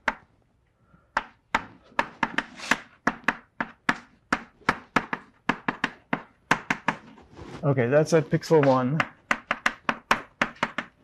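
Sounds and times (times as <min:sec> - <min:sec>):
chalk writing on a blackboard: 0:02.2 - 0:02.9.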